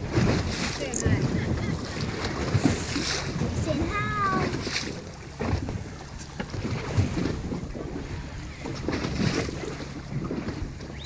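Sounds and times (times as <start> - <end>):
water washing against boat: 0.0 - 11.0
wind buffeting microphone: 0.0 - 11.0.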